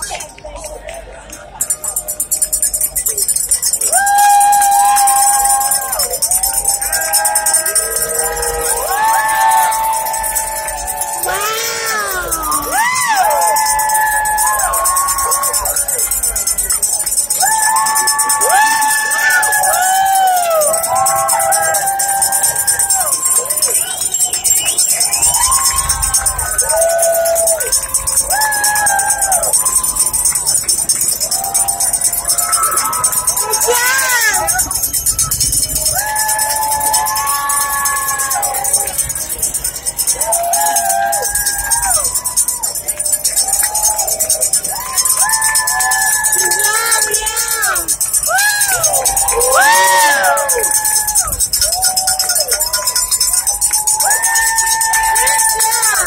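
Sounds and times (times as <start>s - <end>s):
crowd cheering and whooping: 0.0s - 56.0s.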